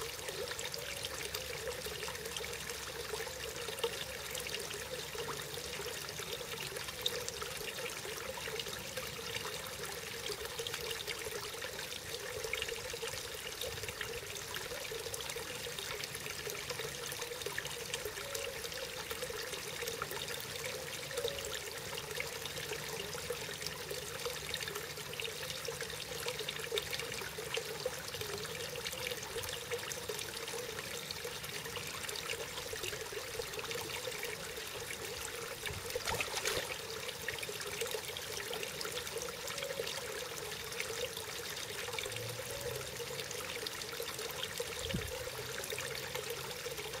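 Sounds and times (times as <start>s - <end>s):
water trickling into pond: 0.0s - 47.0s.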